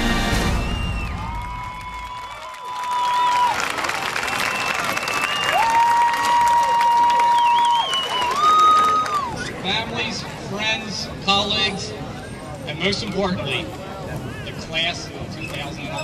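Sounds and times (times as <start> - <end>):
crowd applauding and cheering: 0.0 - 9.6.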